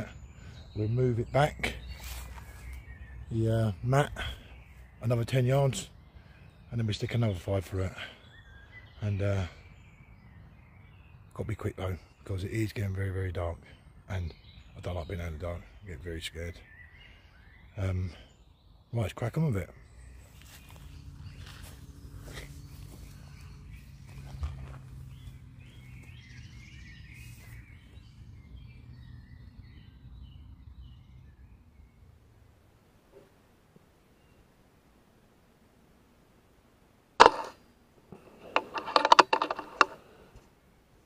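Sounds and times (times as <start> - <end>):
faint bird chirps: 0.0 - 35.5.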